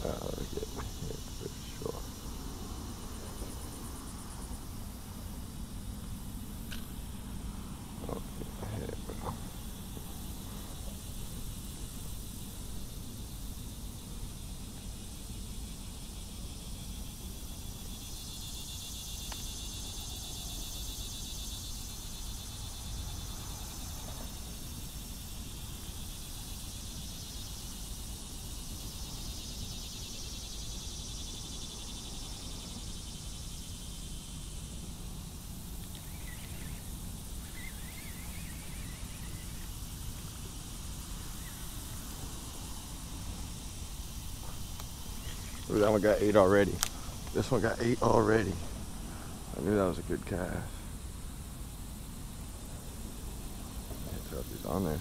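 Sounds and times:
steady low rumble: 0:00.0 - 0:17.9
insects buzzing in shrill chorus: 0:00.0 - 0:55.0.

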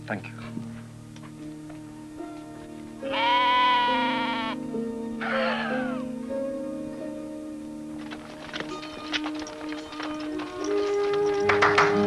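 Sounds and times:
background music with low notes: 0:00.0 - 0:12.0
lamb bleating: 0:03.0 - 0:04.6, 0:05.2 - 0:06.1.

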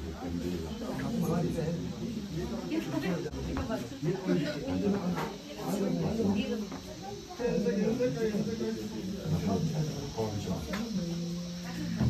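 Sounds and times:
indistinct chatter: 0:00.0 - 0:12.0
steady hiss: 0:00.0 - 0:12.0.

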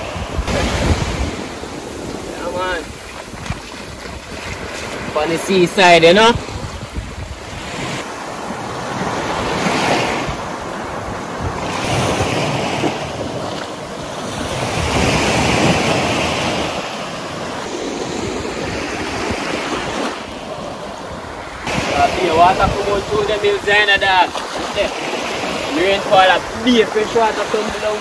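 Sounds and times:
small waves breaking on beach: 0:00.0 - 0:28.0.

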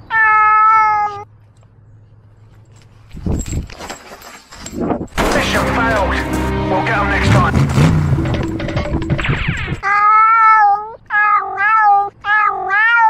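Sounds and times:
cat meowing: 0:00.0 - 0:01.3, 0:09.8 - 0:13.0
music: 0:05.2 - 0:09.8.

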